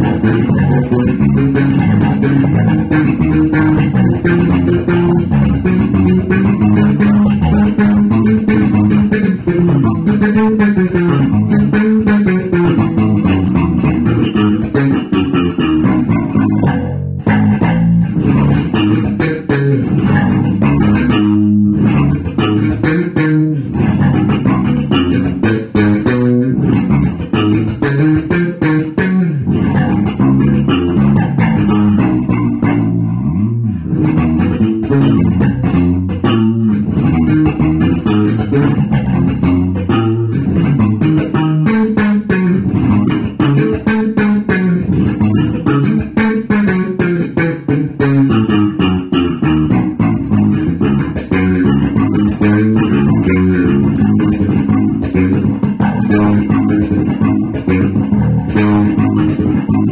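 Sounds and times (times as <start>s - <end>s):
electric bass guitar groove: 0.0s - 59.9s.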